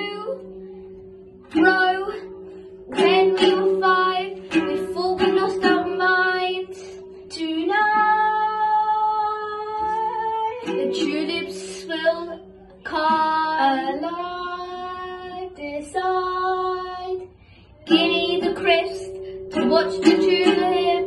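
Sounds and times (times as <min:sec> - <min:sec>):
girls singing: 0:00.0 - 0:00.4, 0:01.5 - 0:21.0
plucked-string accompaniment: 0:00.0 - 0:21.0.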